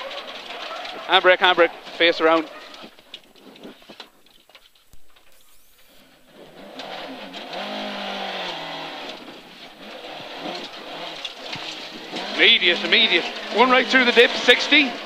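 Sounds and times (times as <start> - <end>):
car engine revving: 5.4 - 15.0.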